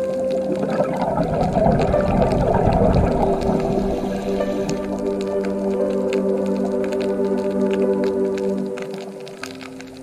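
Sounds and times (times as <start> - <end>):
soft sustained music tones: 0.0 - 10.0
water running and bubbling: 0.0 - 10.0.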